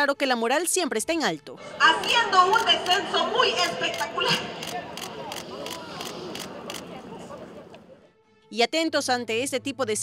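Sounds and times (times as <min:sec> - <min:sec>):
faint chatter of voices: 0:03.9 - 0:08.1.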